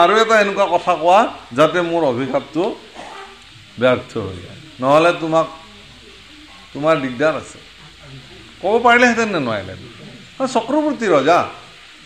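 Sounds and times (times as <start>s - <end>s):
man speaking: 0.0s - 2.8s, 3.8s - 5.6s, 6.8s - 7.6s, 8.6s - 11.6s
faint steady hiss: 0.0s - 12.0s.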